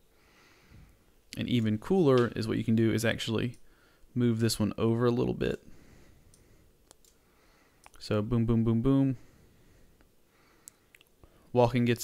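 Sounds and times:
computer mouse clicks: 0:06.3 - 0:07.2.

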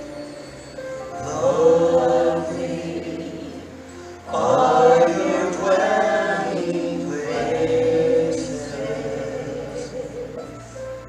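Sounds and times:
man and women singing in harmony: 0:01.1 - 0:10.8.

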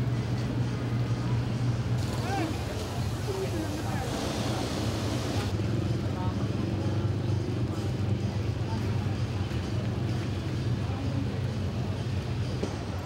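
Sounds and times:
vehicle engine humming: 0:00.0 - 0:06.1
crowd voices: 0:00.0 - 0:13.0
high hiss: 0:02.0 - 0:05.5.

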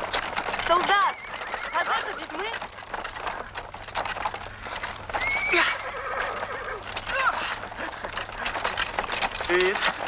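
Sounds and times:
horse whinnying: 0:00.7 - 0:02.5, 0:05.1 - 0:08.3.

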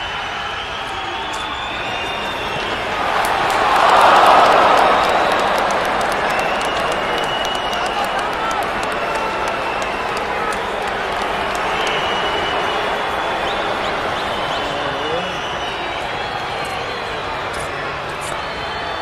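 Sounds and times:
people clapping: 0:00.0 - 0:19.0
people shouting: 0:02.9 - 0:11.7.

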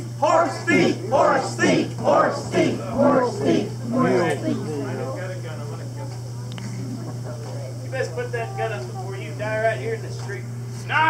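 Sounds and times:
steady low hum: 0:00.0 - 0:11.0
indistinct speech: 0:00.2 - 0:06.1.

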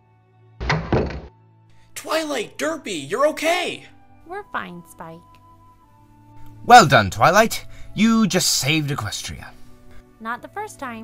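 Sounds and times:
heavy double thud: 0:00.6 - 0:01.3.

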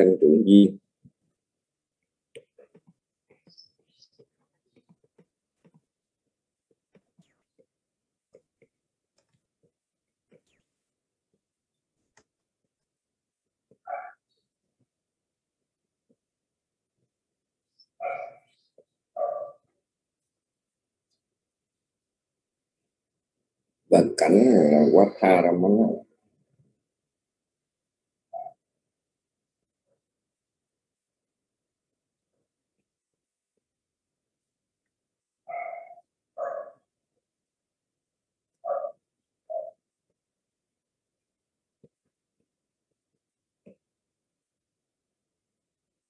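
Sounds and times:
dog barking: 0:18.0 - 0:18.5, 0:35.5 - 0:36.8.

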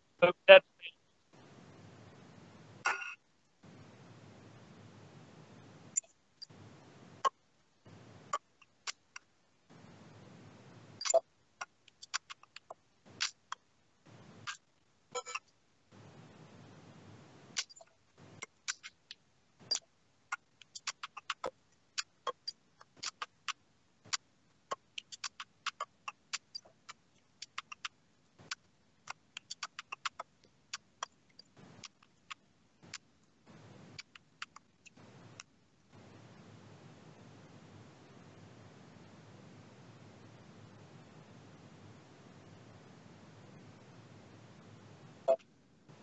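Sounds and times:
sharp irregular clicks: 0:07.2 - 0:09.3, 0:11.0 - 0:14.7, 0:17.6 - 0:36.0.

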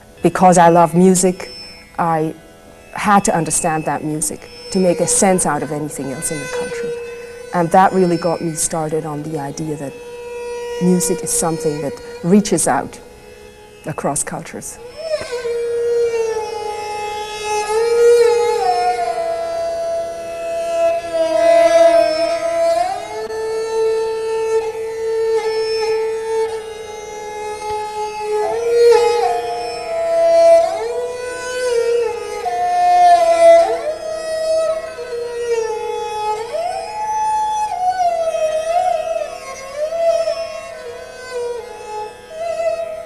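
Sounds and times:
bowed sarangi melody: 0:00.0 - 0:43.0.

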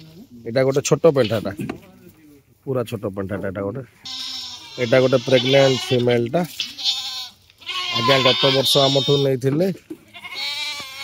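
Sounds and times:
goat bleating: 0:01.2 - 0:01.6, 0:04.0 - 0:11.0.

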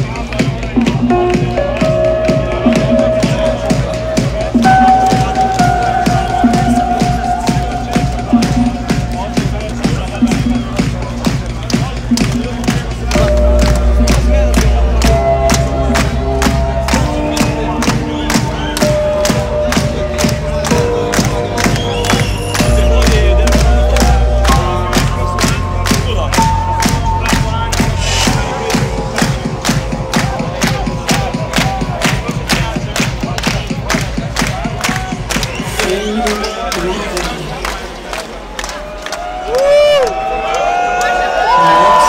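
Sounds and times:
crowd cheering and singing along: 0:00.0 - 0:42.0
electronic dance music: 0:00.0 - 0:42.0.

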